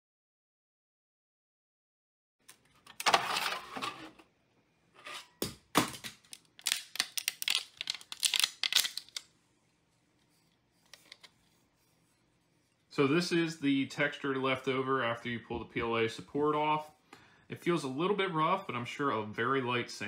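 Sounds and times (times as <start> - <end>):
plastic cracking and snapping: 5.8 - 9.3.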